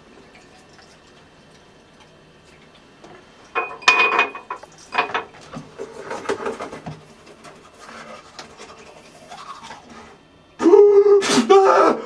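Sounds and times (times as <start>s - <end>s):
toothbrush scrubbing teeth: 7.6s - 10.2s
man crying out: 10.6s - 12.0s.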